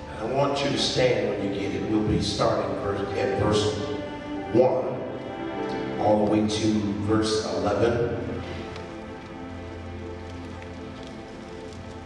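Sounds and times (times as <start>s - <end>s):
soft keyboard chords: 0.0s - 12.0s.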